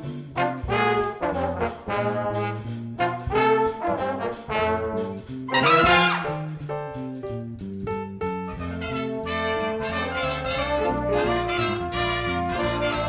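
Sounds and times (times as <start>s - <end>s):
brass ensemble chords: 0.0s - 6.8s, 8.5s - 13.0s
jazz big band playing swing: 0.0s - 13.0s.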